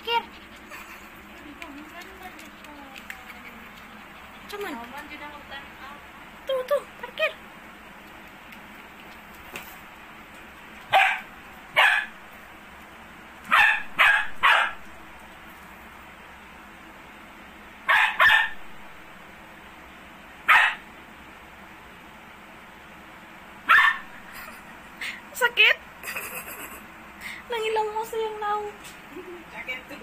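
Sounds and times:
dog barking: 0:10.9 - 0:12.2, 0:13.5 - 0:14.8, 0:17.9 - 0:18.7, 0:20.5 - 0:20.9, 0:23.6 - 0:24.2.

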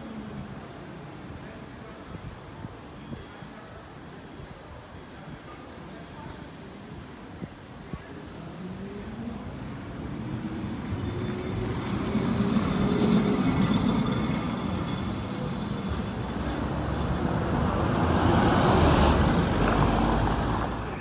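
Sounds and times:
street traffic: 0:00.0 - 0:21.0
tram motor whine and wheels: 0:08.5 - 0:21.0.

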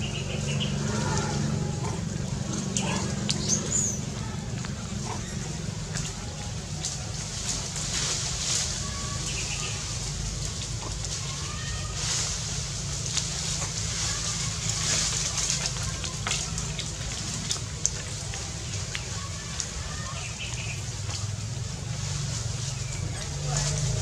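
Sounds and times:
steady low rumble: 0:00.0 - 0:24.0
faint crackles and clicks: 0:01.2 - 0:21.5.

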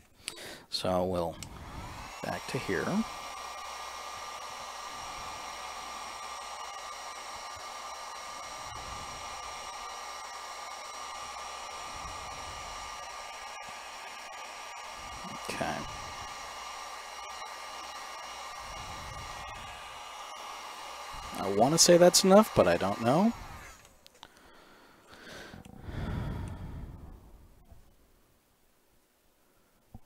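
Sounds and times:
heat gun blowing hot air: 0:00.9 - 0:27.1.

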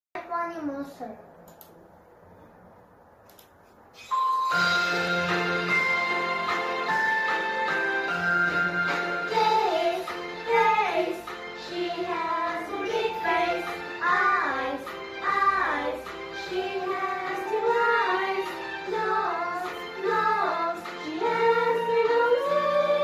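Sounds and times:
instrumental backing music: 0:04.0 - 0:23.0
child singing: 0:09.3 - 0:23.0.

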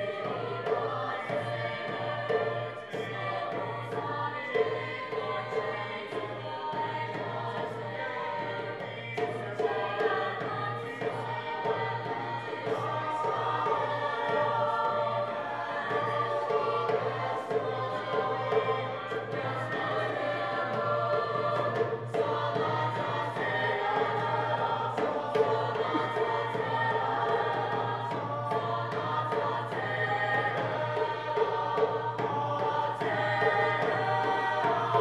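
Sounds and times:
choir singing: 0:00.0 - 0:35.0
drum beating: 0:00.0 - 0:35.0.

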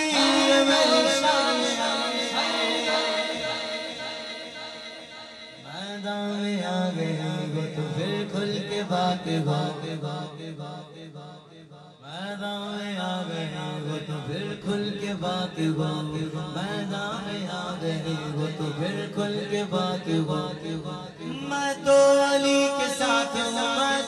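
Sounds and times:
man singing into a microphone: 0:00.0 - 0:24.0.

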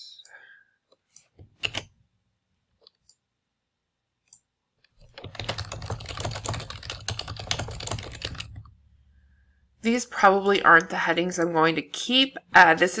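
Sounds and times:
typing on computer keyboard: 0:01.4 - 0:01.9, 0:04.9 - 0:08.8.

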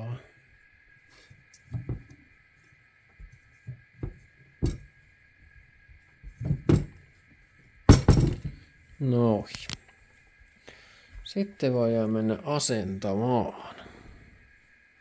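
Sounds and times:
faint steady high hum: 0:00.0 - 0:15.0.

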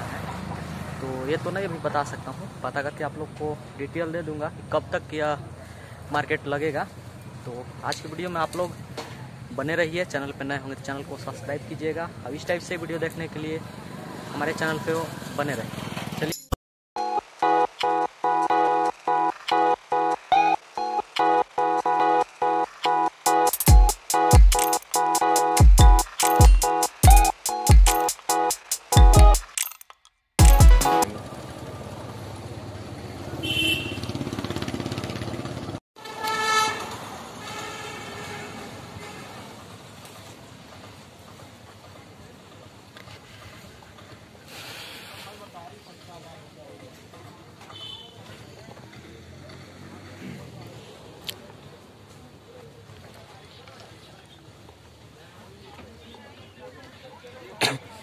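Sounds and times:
song with deep bass hits: 0:20.8 - 0:29.5, 0:30.4 - 0:31.0
short high horn toot: 0:36.0 - 0:39.2.

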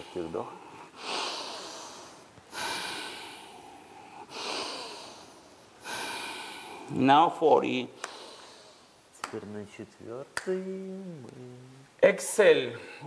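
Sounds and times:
people breathing forcefully in unison: 0:00.0 - 0:06.9, 0:08.0 - 0:09.0.

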